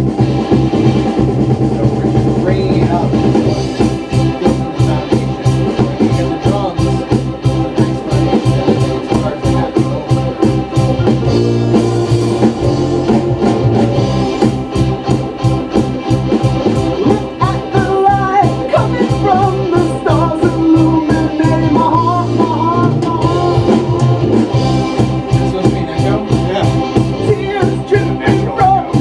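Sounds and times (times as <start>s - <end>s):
organ chords: 0.0s - 29.0s
rock song over studio monitors: 0.0s - 29.0s
steady drum beat: 0.0s - 29.0s
wavering lead line: 0.0s - 29.0s.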